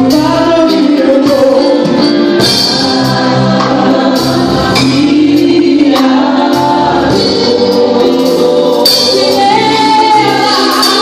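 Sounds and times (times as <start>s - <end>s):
voices singing along: 0.0s - 11.0s
woman singing gospel song: 0.0s - 11.0s.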